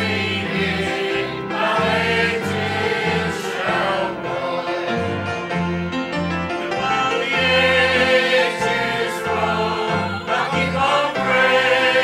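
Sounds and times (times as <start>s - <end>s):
choir singing a hymn: 0.0s - 12.0s
low instrumental accompaniment: 0.0s - 12.0s.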